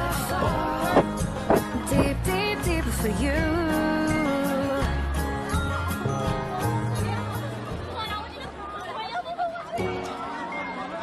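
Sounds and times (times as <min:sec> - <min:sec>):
pop song with bass line: 0:00.0 - 0:06.6
crowd chattering: 0:00.0 - 0:11.0.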